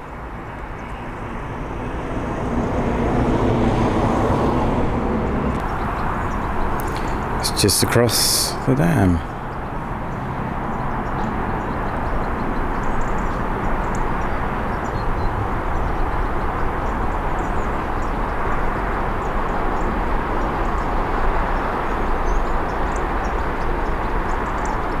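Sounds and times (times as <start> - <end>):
road traffic passing: 0.0 - 25.0.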